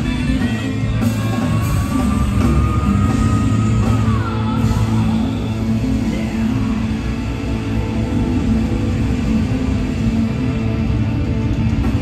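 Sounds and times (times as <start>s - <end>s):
live rock band playing loudly: 0.0s - 12.0s.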